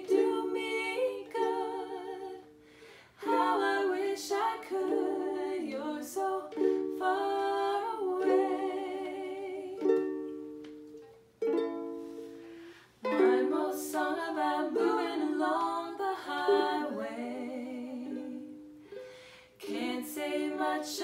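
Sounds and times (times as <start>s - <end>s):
ukulele strumming chords: 0.0s - 21.0s.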